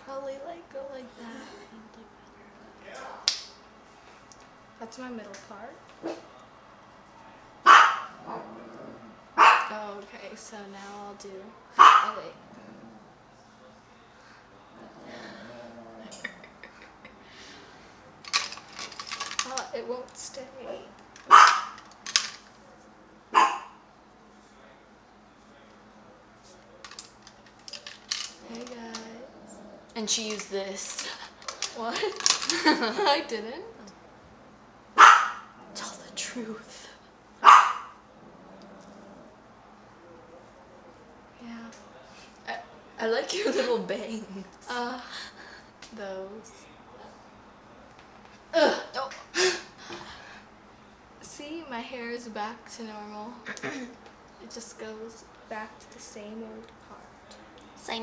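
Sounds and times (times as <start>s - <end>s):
dog barking: 6.0s - 6.3s, 7.6s - 8.2s, 9.4s - 9.7s, 11.8s - 12.2s, 20.6s - 21.8s, 23.3s - 23.8s, 35.0s - 35.5s, 37.4s - 38.0s.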